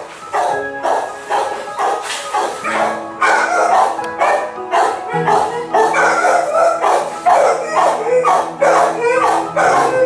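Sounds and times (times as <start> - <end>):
dogs barking: 0.0 - 10.0.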